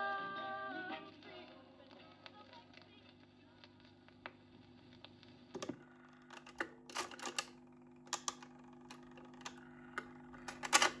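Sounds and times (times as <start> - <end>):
record player mechanical clicks: 1.2 - 11.0.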